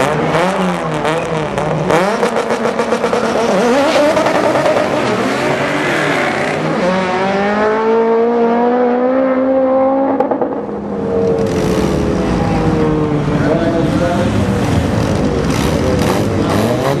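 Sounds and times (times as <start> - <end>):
race car engines at full throttle: 0.0 - 17.0.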